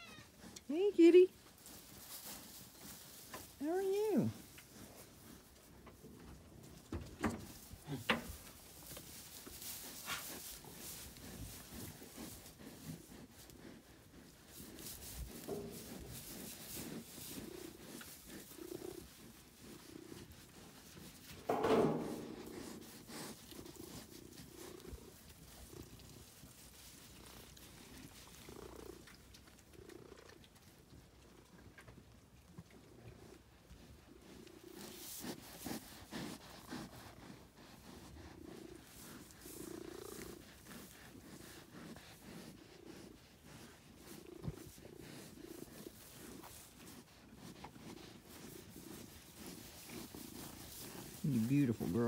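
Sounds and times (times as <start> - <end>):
cat purring: 11.2 - 30.4, 34.1 - 52.0
low thump: 21.5 - 22.7.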